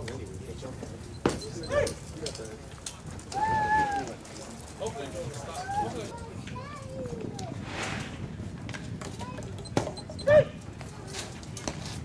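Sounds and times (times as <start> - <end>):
outdoor background: 0.0 - 12.0.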